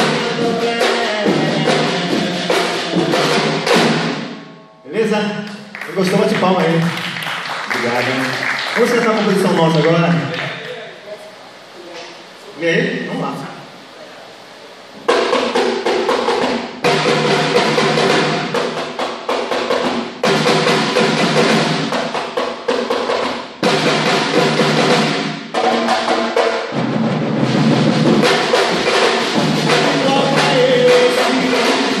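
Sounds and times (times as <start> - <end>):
percussion ensemble drumming: 0.0 - 11.3, 15.0 - 32.0.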